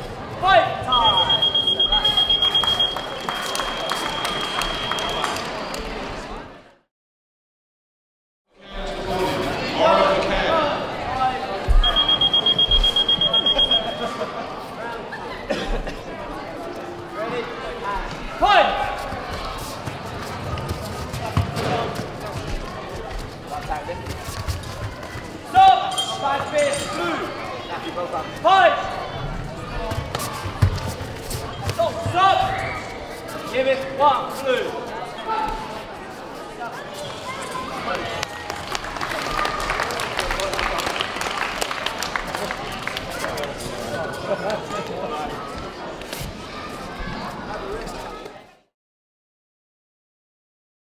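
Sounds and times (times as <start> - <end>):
voices and chatter in hall: 0.0 - 6.9, 8.5 - 48.7
electronic timer long beep: 0.9 - 5.2, 11.8 - 14.0.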